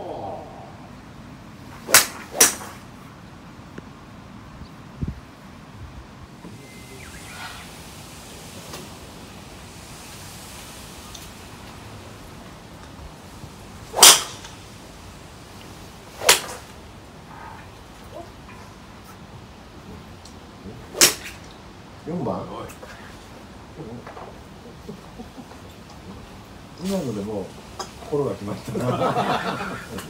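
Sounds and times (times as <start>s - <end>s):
golf club swish and crack: 1.7s - 3.0s, 13.8s - 14.9s, 15.5s - 16.8s, 20.8s - 21.6s.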